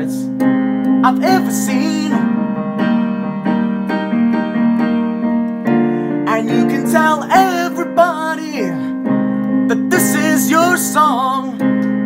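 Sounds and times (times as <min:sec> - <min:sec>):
synthesizer piano chords ringing: 0:00.0 - 0:12.0.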